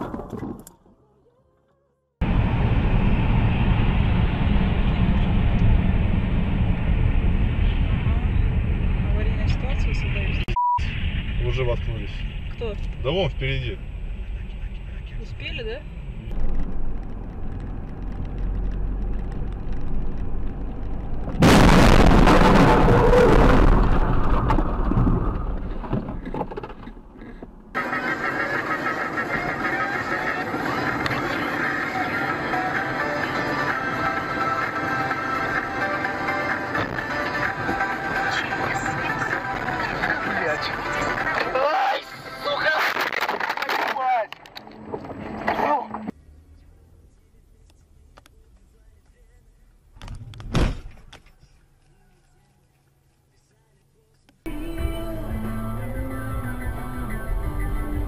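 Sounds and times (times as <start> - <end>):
car road noise inside cabin: 2.2 - 21.6, 22.2 - 58.0
loud collision noise burst: 21.0 - 26.0
music playing: 29.3 - 42.8, 54.5 - 58.0.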